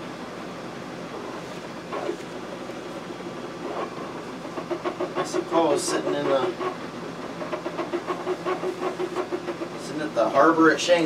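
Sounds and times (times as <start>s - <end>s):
rag wiping metal: 1.1s - 2.3s, 3.5s - 11.0s.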